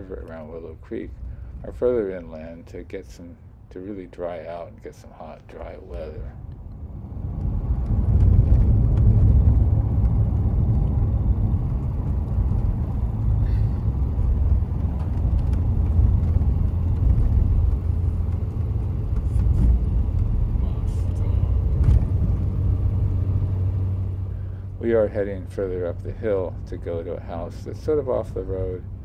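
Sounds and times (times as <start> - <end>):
car engine and tyres rumbling: 0.0 - 29.0.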